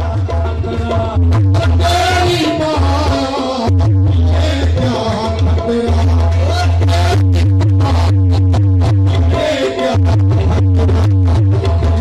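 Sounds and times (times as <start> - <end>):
qawwali music over a loudspeaker: 0.0 - 12.0.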